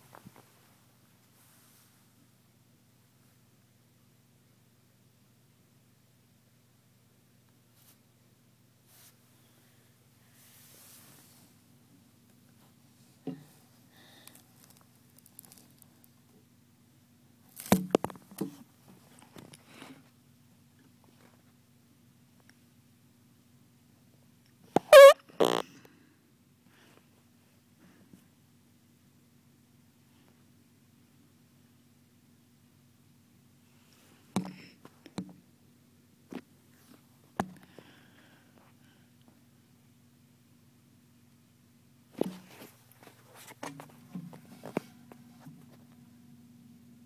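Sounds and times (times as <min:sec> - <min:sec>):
faint low hum: 0:00.0 - 0:47.0.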